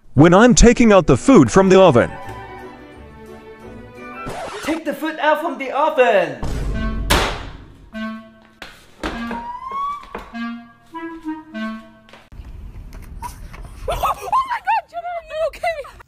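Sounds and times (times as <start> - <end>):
voice: 0.2 - 2.2, 4.7 - 6.4, 14.0 - 16.0
comic tune of pitched notes: 4.0 - 4.8, 9.1 - 12.1.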